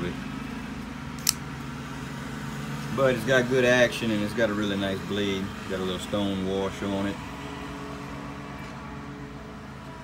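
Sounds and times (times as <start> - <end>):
folding knife blade clicking open: 1.2 - 1.4.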